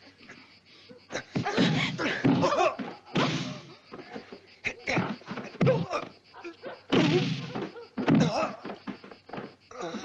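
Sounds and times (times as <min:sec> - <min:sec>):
loud scuffling: 0:07.4 - 0:09.7
strained grunts: 0:09.7 - 0:10.0.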